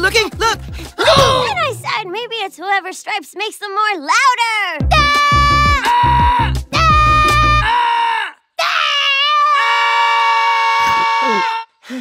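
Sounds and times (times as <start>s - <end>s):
cartoon characters yelling: 1.0s - 2.0s, 4.2s - 11.7s.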